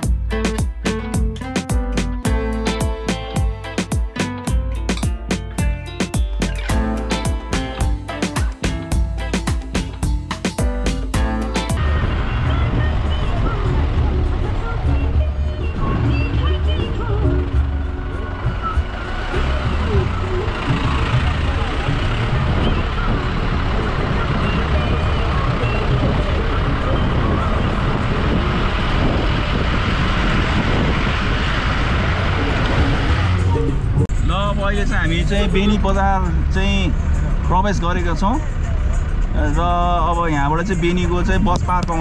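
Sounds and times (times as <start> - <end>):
vehicle engine and road rumble: 0.0 - 42.0.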